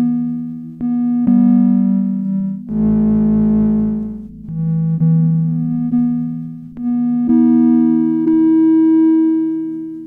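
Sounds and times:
sustained synthesizer tones: 0.0 - 9.6.

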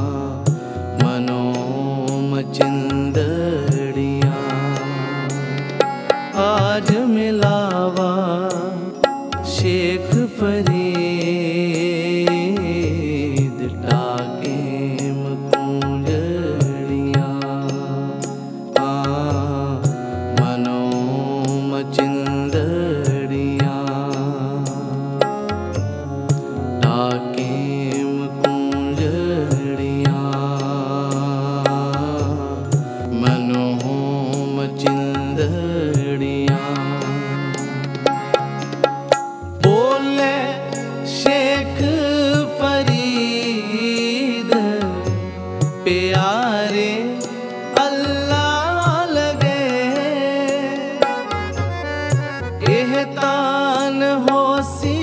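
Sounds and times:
harmoniums playing melody: 0.0 - 55.0
tabla rhythm: 0.0 - 55.0.

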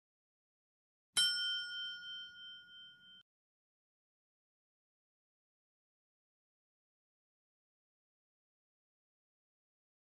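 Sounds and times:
notification bell ding: 1.2 - 3.2.

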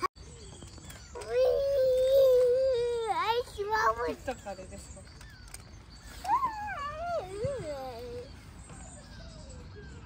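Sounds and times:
young child whining: 1.1 - 4.1, 6.1 - 10.0.

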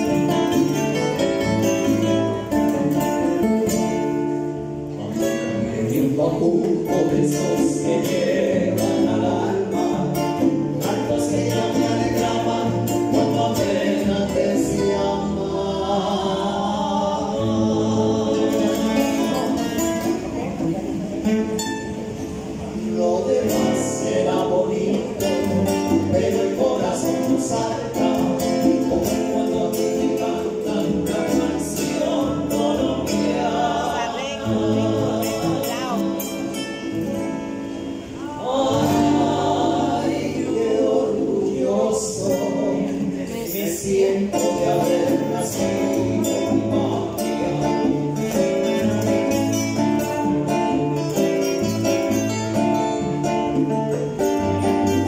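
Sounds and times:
men singing together: 0.0 - 19.8, 22.7 - 37.1, 38.1 - 53.6
acoustic guitars: 0.0 - 55.0
congas: 0.0 - 55.0.

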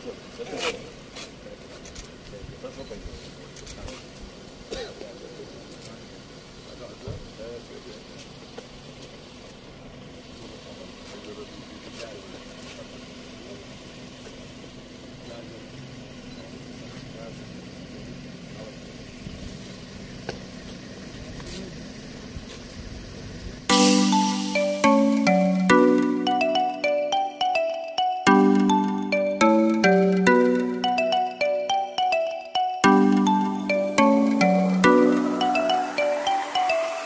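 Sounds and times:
loud chiming tune: 23.7 - 37.0.

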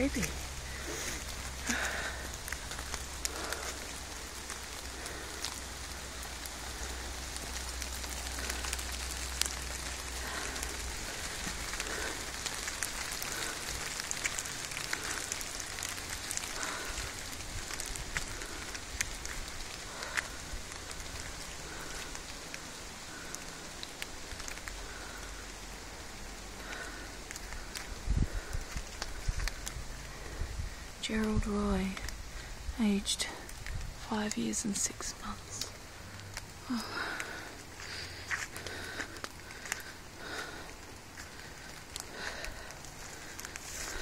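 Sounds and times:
rain on foliage: 0.0 - 44.0
raindrop ticks: 0.0 - 44.0.

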